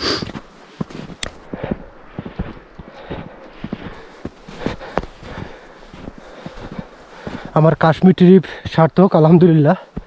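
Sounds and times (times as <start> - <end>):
footsteps on snow: 0.0 - 10.0.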